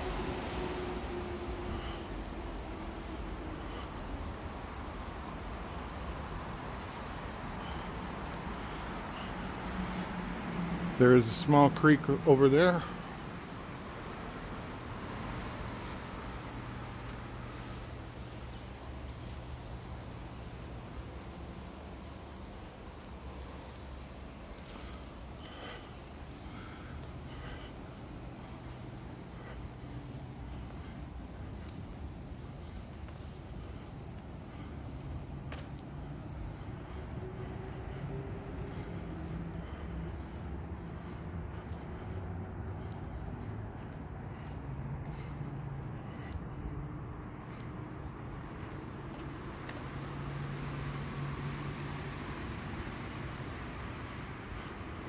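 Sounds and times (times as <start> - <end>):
insects droning: 0.0 - 55.0.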